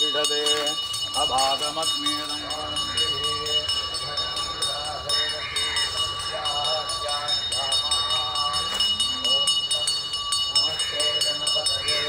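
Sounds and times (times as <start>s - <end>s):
men chanting together: 0.0s - 12.0s
steady high ringing: 0.0s - 12.0s.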